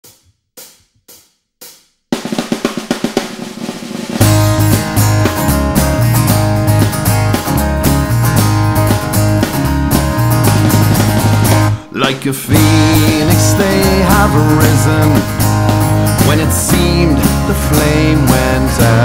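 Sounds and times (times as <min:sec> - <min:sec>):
drum kit: 0:00.0 - 0:19.0
snare drum roll: 0:00.1 - 0:07.5, 0:10.4 - 0:11.7
steady bass line: 0:04.2 - 0:11.9, 0:12.5 - 0:19.0.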